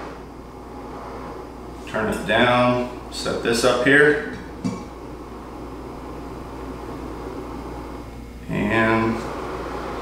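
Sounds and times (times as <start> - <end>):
gas stove hissing: 0.0 - 10.0
steady low hum: 0.0 - 10.0.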